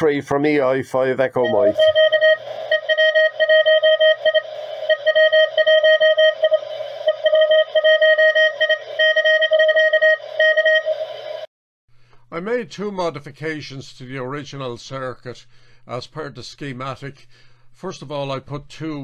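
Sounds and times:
morse code tone: 0:01.4 - 0:11.5.

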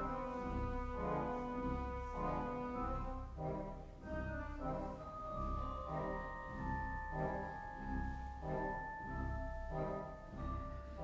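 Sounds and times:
pipe organ chords: 0:00.0 - 0:11.0.

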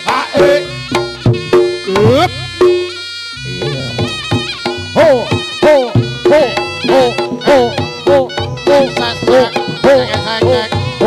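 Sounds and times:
drum strokes: 0:00.0 - 0:11.0
reedy shawm melody: 0:00.0 - 0:11.0.

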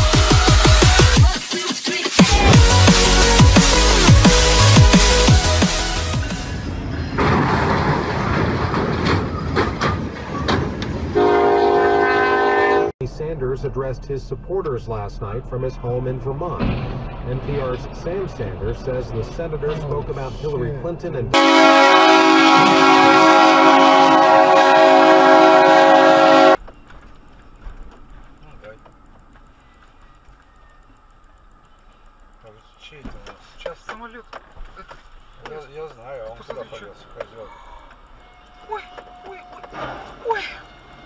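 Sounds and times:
trailer crunching and banging: 0:02.2 - 0:11.2, 0:13.0 - 0:25.3, 0:38.9 - 0:41.0
train rumble: 0:02.2 - 0:41.0
locomotive air horn blowing: 0:11.1 - 0:12.9, 0:21.4 - 0:26.6.

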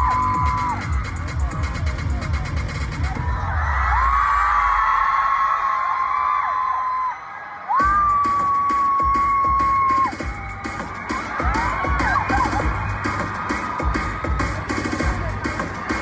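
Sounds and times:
electronic dance music over speakers: 0:00.0 - 0:04.2, 0:07.6 - 0:16.0
fans screaming: 0:00.0 - 0:16.0.

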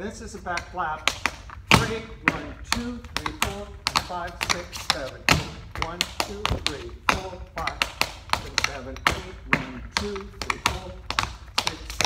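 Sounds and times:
man's voice: 0:00.0 - 0:12.0
tap shoes on wooden board: 0:00.4 - 0:12.0.

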